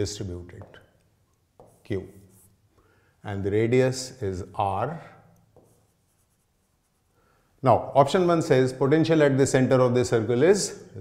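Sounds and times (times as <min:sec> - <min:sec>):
pen tapping on writing board: 0:01.6 - 0:01.8.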